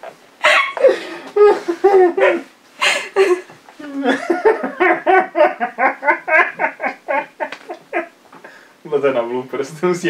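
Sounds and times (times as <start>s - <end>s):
woman laughing hard: 0.4s - 8.2s.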